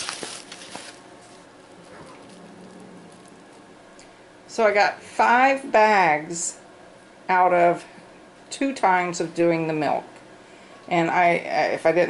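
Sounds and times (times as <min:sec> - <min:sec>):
plastic bag crinkling: 0:00.0 - 0:03.7.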